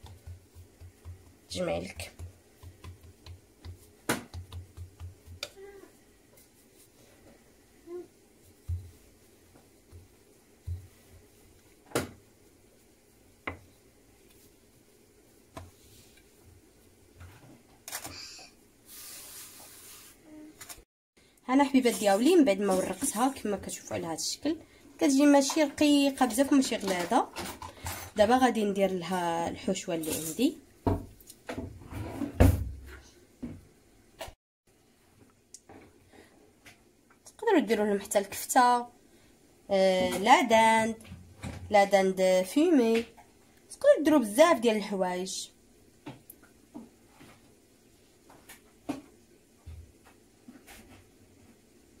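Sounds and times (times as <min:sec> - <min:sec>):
soft thumps of dough: 0:00.0 - 0:05.7, 0:08.4 - 0:12.2.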